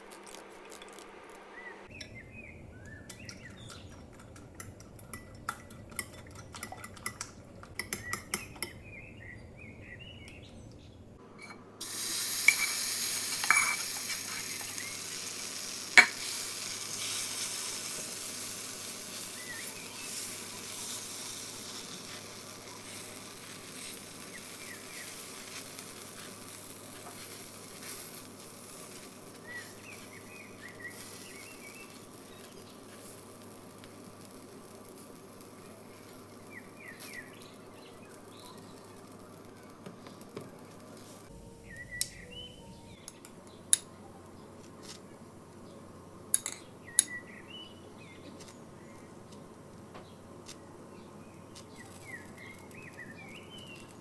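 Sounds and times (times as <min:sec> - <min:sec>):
batter sizzling in hot oil: 0:00.0 - 0:02.4, 0:11.4 - 0:41.8, 0:51.3 - 0:54.0
spoon scraping pan: 0:12.4 - 0:14.9.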